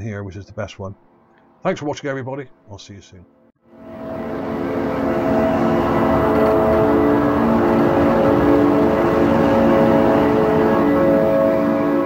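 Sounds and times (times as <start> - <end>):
droning chord music: 3.6 - 12.0.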